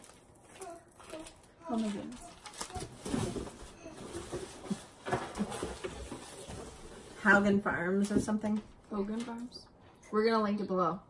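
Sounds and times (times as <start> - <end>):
paper rustling: 0.0 - 7.5.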